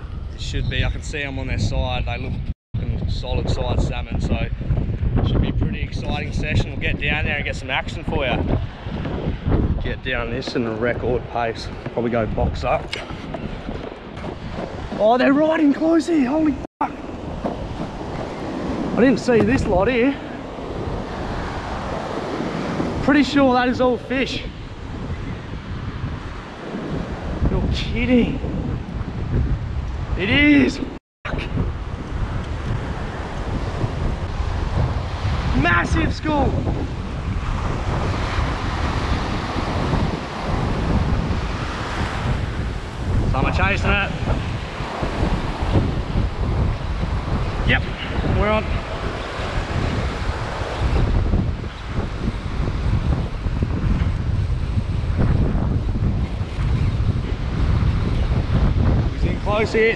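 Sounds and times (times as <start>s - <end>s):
wind buffeting microphone: 0.0s - 59.9s
surf washing onto sand: 5.2s - 59.9s.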